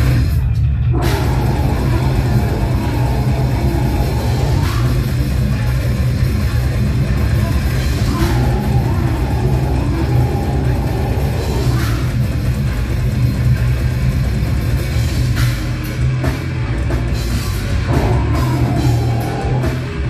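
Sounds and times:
distorted electric guitars: 0:00.0 - 0:20.0
drum kit: 0:00.0 - 0:20.0.

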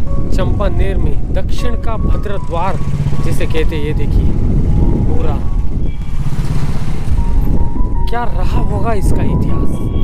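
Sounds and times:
faint background music: 0:00.0 - 0:06.3, 0:07.1 - 0:10.0
motorcycle low rumble: 0:00.0 - 0:10.0.

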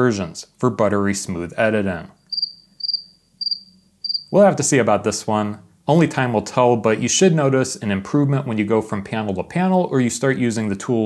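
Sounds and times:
cricket chirping: 0:02.2 - 0:04.3.

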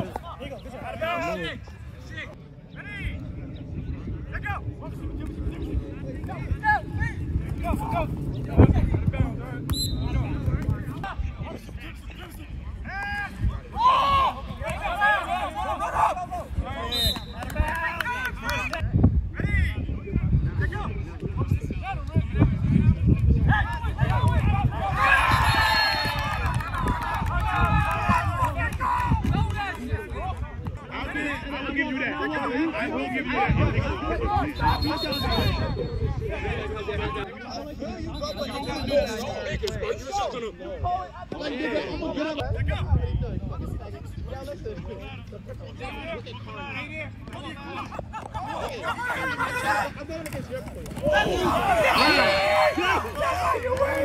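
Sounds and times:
players shouting: 0:00.0 - 0:03.2, 0:12.0 - 0:18.8, 0:23.4 - 0:35.9, 0:44.9 - 0:54.0
steady low rumble: 0:01.7 - 0:12.8
people shouting: 0:12.9 - 0:16.9, 0:23.5 - 0:29.1, 0:48.5 - 0:50.1, 0:51.0 - 0:54.0
long drawn-out yells: 0:51.1 - 0:54.0.

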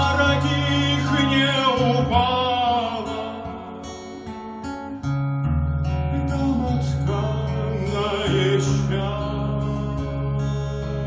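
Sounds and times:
man singing: 0:00.0 - 0:04.2, 0:06.1 - 0:11.0
acoustic guitar playing: 0:00.0 - 0:11.0.

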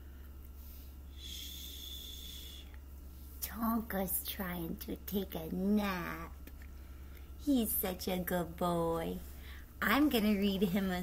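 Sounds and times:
woman shushing: 0:01.2 - 0:02.7.

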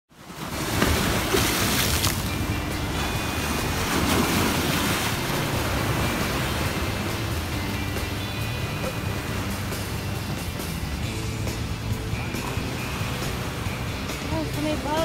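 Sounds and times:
surf breaking on rocks: 0:00.2 - 0:15.0
background music: 0:00.9 - 0:15.0.

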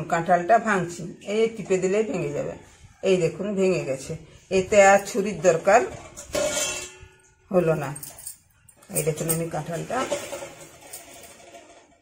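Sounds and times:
woman speaking: 0:00.0 - 0:06.0, 0:07.5 - 0:08.2, 0:08.8 - 0:10.3.

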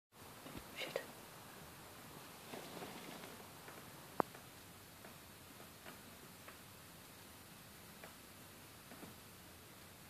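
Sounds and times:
faint whispering: 0:00.7 - 0:01.2.

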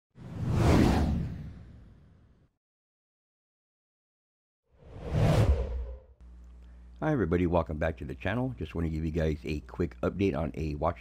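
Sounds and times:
whoosh with deep rumble: 0:04.8 - 0:06.1.

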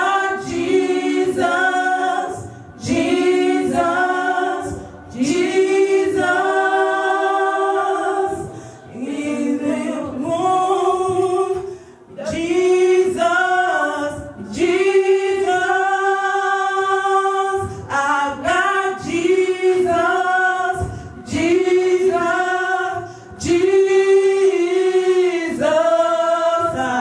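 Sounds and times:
gospel choir of women singing: 0:00.0 - 0:27.0.

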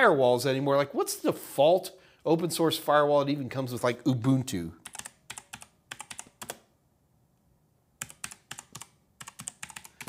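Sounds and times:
computer keyboard typing: 0:04.8 - 0:06.7, 0:08.0 - 0:10.0.

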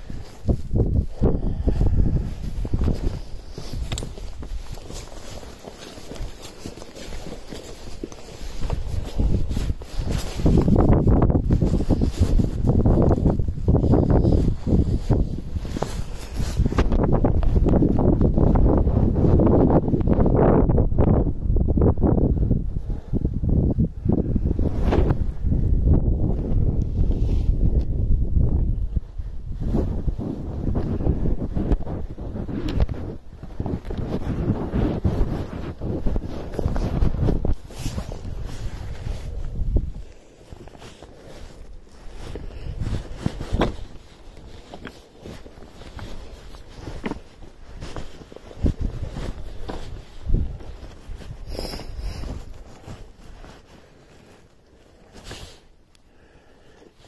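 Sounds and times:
wind buffeting microphone: 0:00.0 - 0:53.6
boots stepping on rock: 0:02.7 - 0:13.8, 0:40.6 - 0:53.4.

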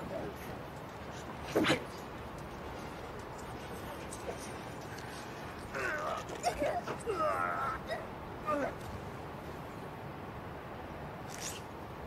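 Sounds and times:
low background noise: 0:00.0 - 0:12.0
man's strained cry: 0:05.7 - 0:08.8.

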